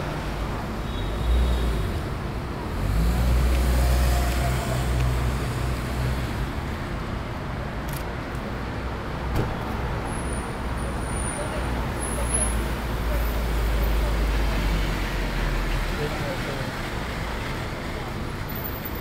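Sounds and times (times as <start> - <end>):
city street traffic: 0.0 - 19.0.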